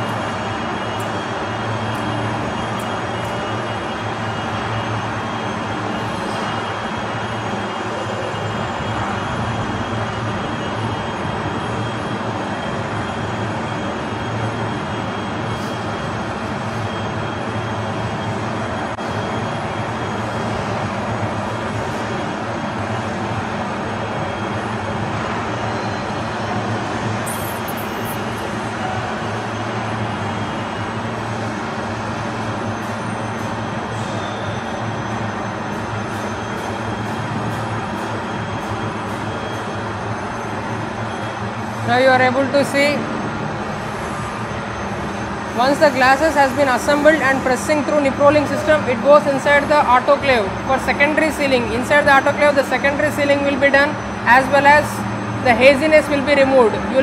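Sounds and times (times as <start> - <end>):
factory machinery drone: 0.0 - 57.0
high squeal: 0.0 - 57.0.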